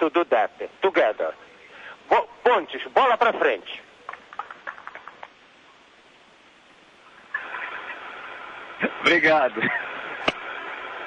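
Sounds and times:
loud rush of static: 0.0 - 11.0
radio static hiss: 0.0 - 11.0.

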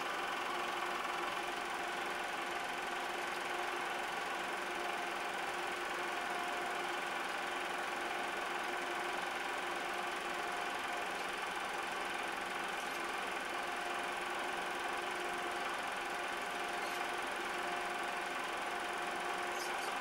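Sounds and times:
film projector whirring: 0.0 - 20.0.

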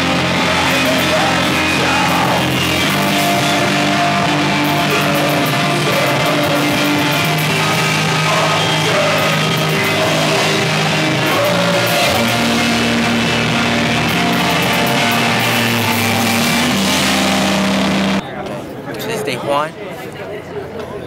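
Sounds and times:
rock band holding sustained chords: 0.0 - 18.2.

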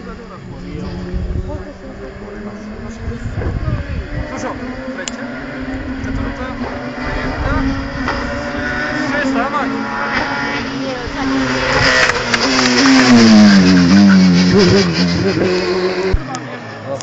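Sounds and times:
race car engine at high revs: 0.0 - 17.0.

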